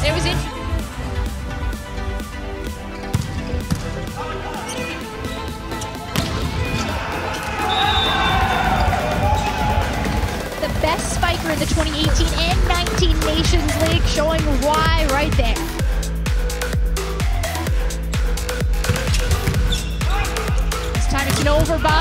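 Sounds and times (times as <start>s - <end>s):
players shouting: 4.1s - 11.5s, 20.0s - 22.0s.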